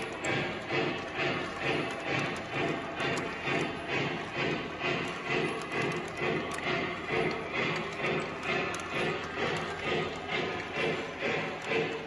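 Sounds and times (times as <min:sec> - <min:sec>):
model train running on track: 0:00.0 - 0:12.0.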